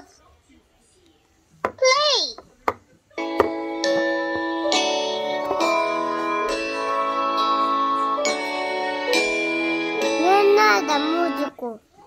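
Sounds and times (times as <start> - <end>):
toy pen playing tune: 3.2 - 11.6.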